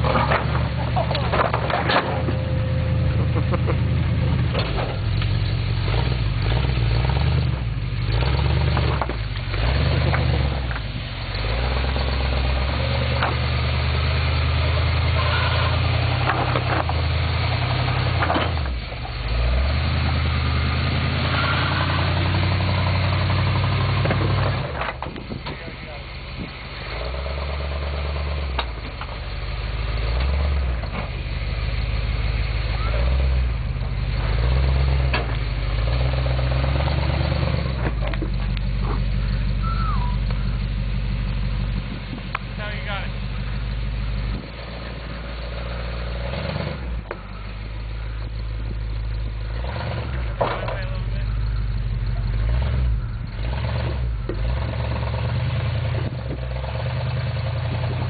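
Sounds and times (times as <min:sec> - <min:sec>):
truck engine at low revs: 0:00.0 - 0:58.0.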